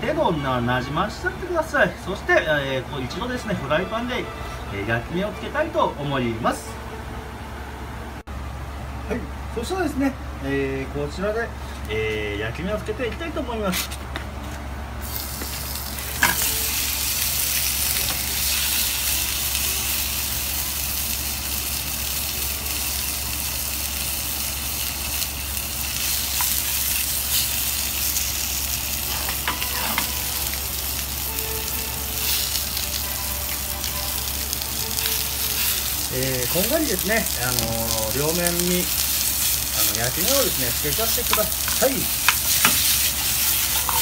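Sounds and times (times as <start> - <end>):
meat sizzling in a frying pan: 15.0 - 44.0.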